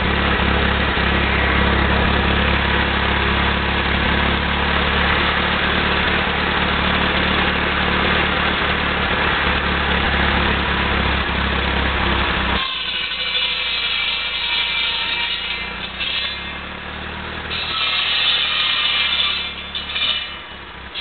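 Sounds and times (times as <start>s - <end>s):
tractor engine running: 0.0s - 21.0s.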